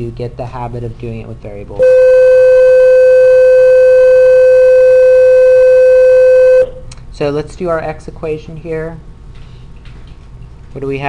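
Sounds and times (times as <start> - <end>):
loud electronic beep: 1.8 - 6.8.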